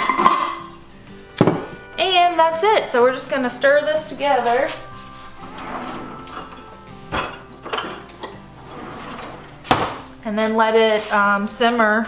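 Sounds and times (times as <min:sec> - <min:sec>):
quiet background music: 0:00.0 - 0:12.0
utensils rattling: 0:04.6 - 0:09.6
kitchen drawer opening: 0:05.4 - 0:10.1.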